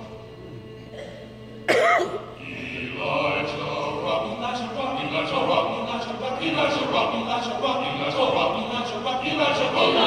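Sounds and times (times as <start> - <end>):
faint choir voices: 0.0 - 10.0
person coughing: 0.9 - 2.3.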